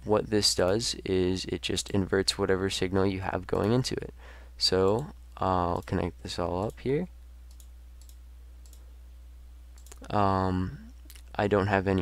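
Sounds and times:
low electrical hum: 0.0 - 12.0
computer mouse clicks: 7.5 - 8.8, 9.8 - 10.1.

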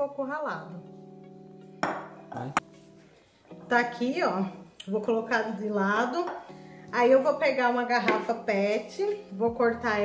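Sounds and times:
soft background music: 0.0 - 10.0
glass bowl knocking on stone: 1.8 - 2.1.

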